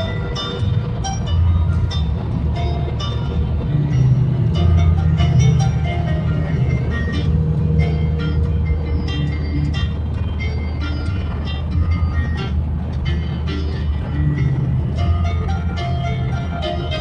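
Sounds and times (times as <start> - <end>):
car road noise: 0.0 - 17.0
piano music: 0.0 - 17.0.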